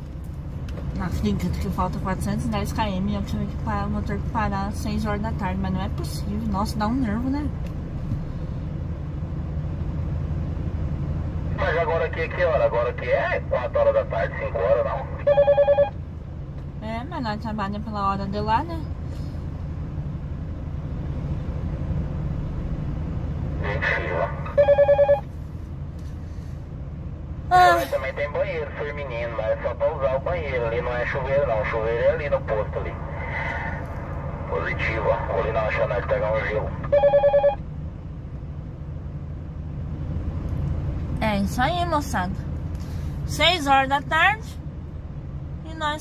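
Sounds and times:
low hum in truck cab: 0:00.0 - 0:46.0
low rumble: 0:00.0 - 0:46.0
radio talk: 0:11.4 - 0:16.0, 0:23.5 - 0:25.3, 0:27.5 - 0:37.6, 0:41.2 - 0:44.6
pulsing electronic beep: 0:24.6 - 0:25.3.

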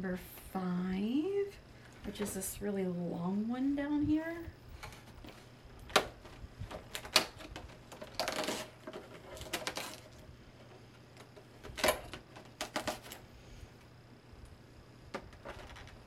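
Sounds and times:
packaging rustling: 0:04.8 - 0:10.2.

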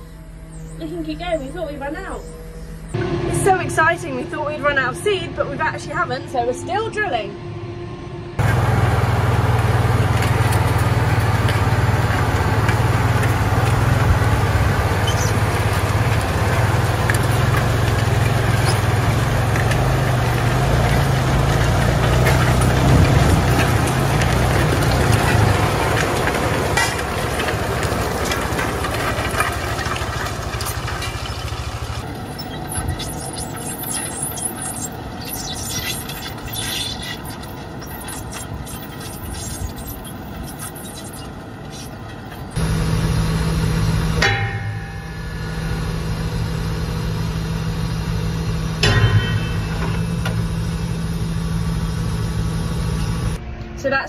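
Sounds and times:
tractor engine rumbling: 0:00.0 - 0:54.0.

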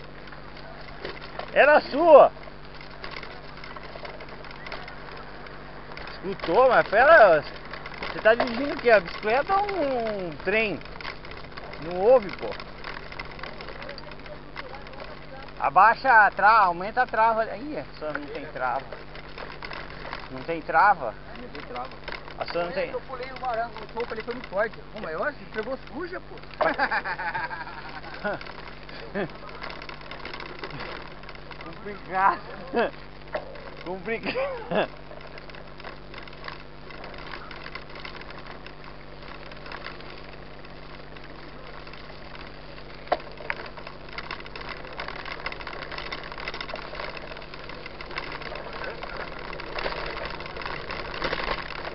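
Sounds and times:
bike rattles and ticks: 0:00.0 - 0:51.9
bike tyres rolling on dirt: 0:00.0 - 0:51.9.

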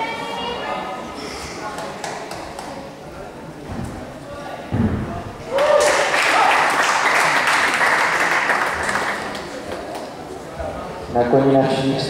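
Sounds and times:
faint echoing voices: 0:00.0 - 0:12.0
heavy thud on parallel bars: 0:04.7 - 0:05.4.

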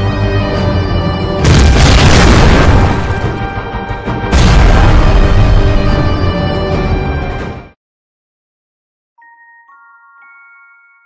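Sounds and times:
dramatic trailer music: 0:00.0 - 0:07.8
explosion boom: 0:01.4 - 0:06.1
rumbling blast: 0:01.4 - 0:06.3.

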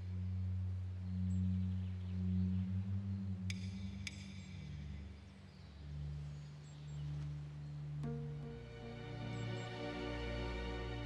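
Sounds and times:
low sustained string drone: 0:00.0 - 0:11.0.

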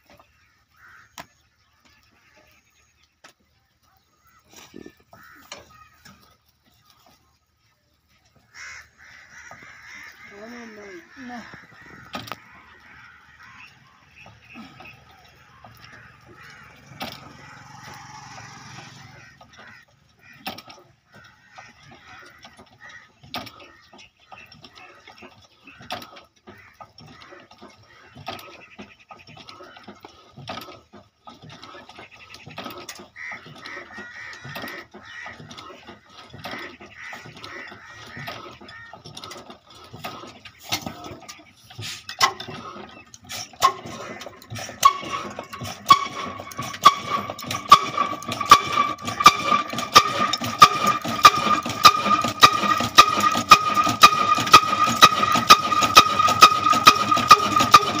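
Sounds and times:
metal clicks and knocks: 0:11.5 - 0:13.6, 0:19.4 - 0:28.6, 0:29.2 - 0:58.0
diesel engine whine and knocks: 0:11.7 - 0:29.0, 0:42.2 - 0:58.0.

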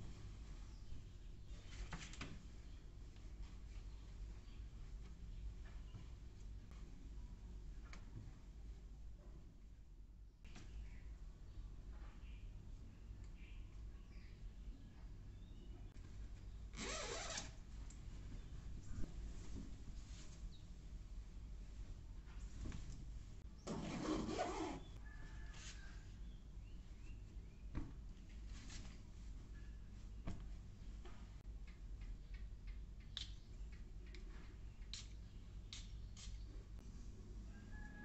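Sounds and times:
zipper being undone: 0:16.8 - 0:17.6, 0:23.7 - 0:25.0.

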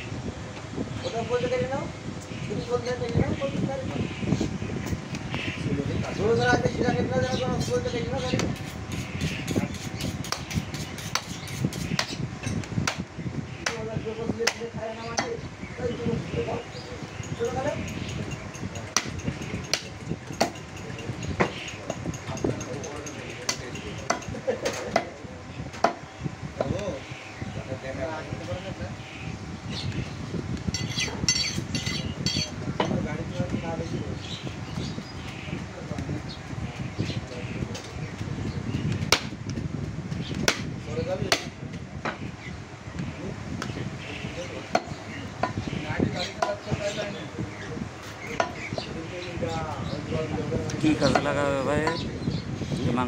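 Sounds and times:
knife chopping onto wooden block: 0:09.6 - 0:12.2, 0:40.4 - 0:40.7, 0:41.3 - 0:42.2.

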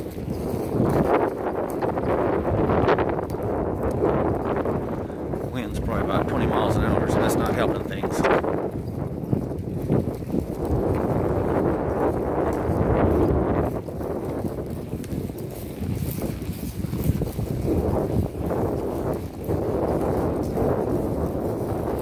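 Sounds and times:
horse hoofbeats in grass: 0:00.0 - 0:22.0
wind buffeting microphone: 0:00.0 - 0:22.0.

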